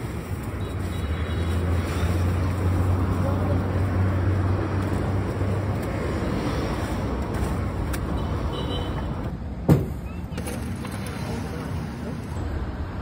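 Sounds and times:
passing vehicles rumbling: 0.0s - 13.0s
street noise: 0.0s - 13.0s.

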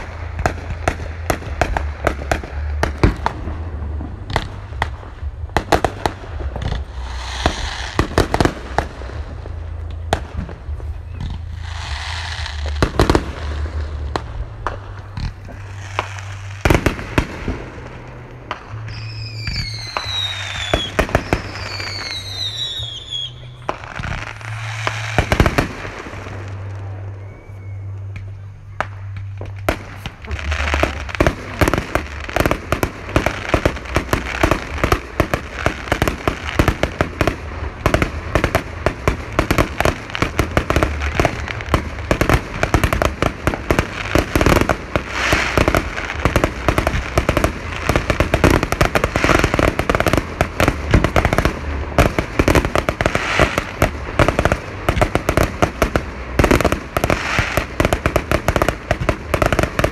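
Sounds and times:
firework bangs and crackling: 0.0s - 59.9s
whistling firework shells: 10.7s - 59.9s.

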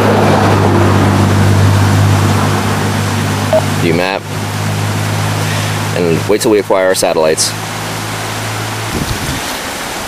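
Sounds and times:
low mechanical hum: 0.0s - 9.7s.

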